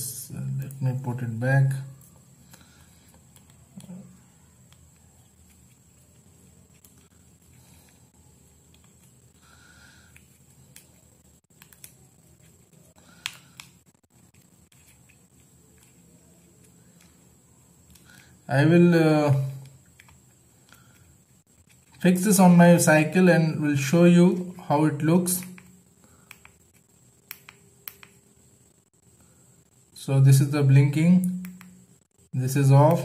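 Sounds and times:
low room hiss: 0:00.0 - 0:33.0.

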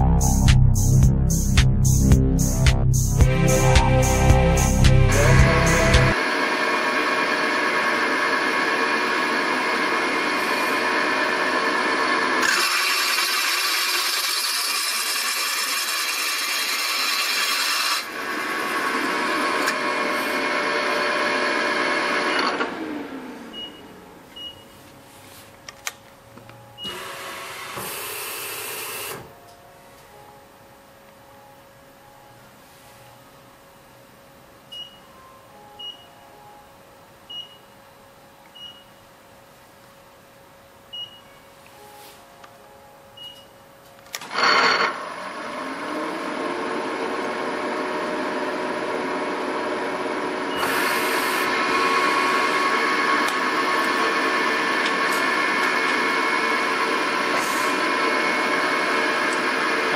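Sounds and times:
milling machine running: 0:03.2 - 0:23.2, 0:44.1 - 0:59.9.

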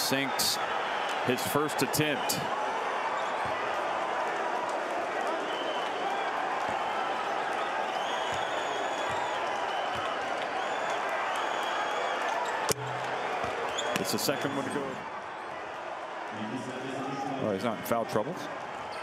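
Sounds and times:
indistinct crowd voices: 0:00.0 - 0:19.0.

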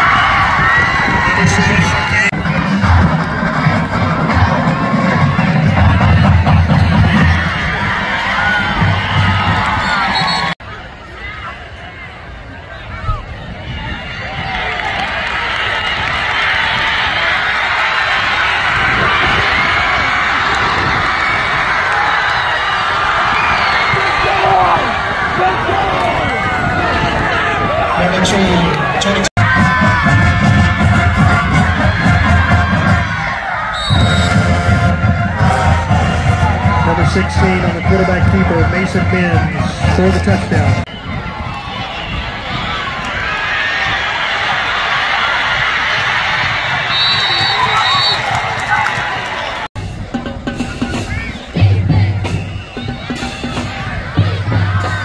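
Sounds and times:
crowd cheering and shouting: 0:00.0 - 0:55.0
marching band playing: 0:01.8 - 0:10.6, 0:29.4 - 0:40.9, 0:46.9 - 0:48.7, 0:49.7 - 0:55.0.

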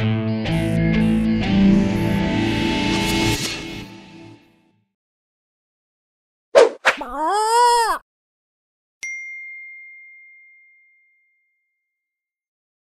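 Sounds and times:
high bell-like ding: 0:09.0 - 0:11.6.

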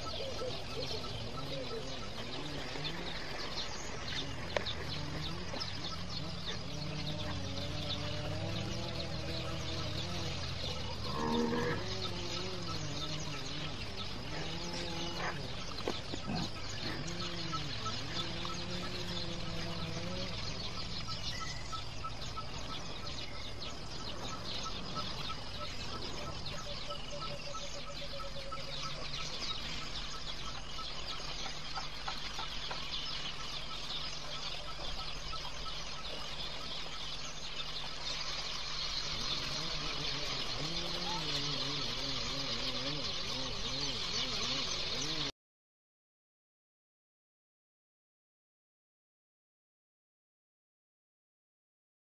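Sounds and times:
wavering voice-like call: 0:00.0 - 0:03.4, 0:04.1 - 0:22.6, 0:39.2 - 0:45.3
repeated bird-like calls: 0:00.0 - 0:45.3.

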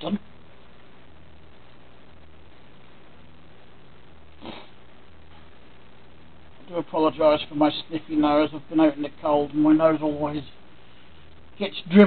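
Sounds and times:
steady low hum: 0:00.0 - 0:12.0
man sniffing: 0:04.4 - 0:04.8.

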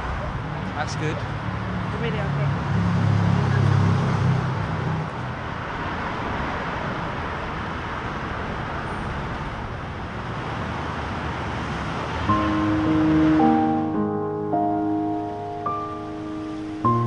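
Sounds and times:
road traffic noise: 0:00.0 - 0:17.0
low engine drone: 0:12.3 - 0:17.0.

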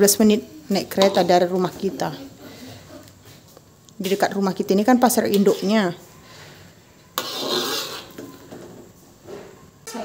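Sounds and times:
spatula stirring curry in wok: 0:05.2 - 0:08.7.

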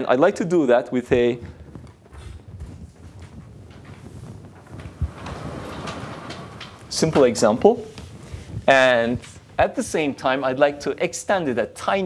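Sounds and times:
whiteboard panels rolling: 0:03.1 - 0:09.4.

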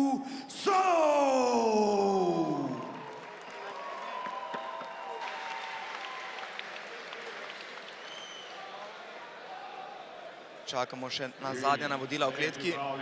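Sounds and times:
crowd applauding: 0:02.3 - 0:09.9.

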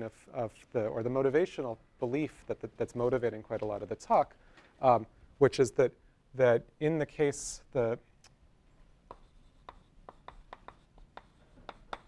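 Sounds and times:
chalk writing on a blackboard: 0:09.0 - 0:12.0.

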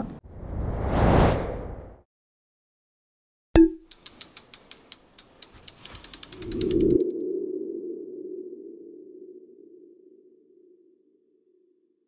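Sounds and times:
run of clicks: 0:03.8 - 0:07.0.

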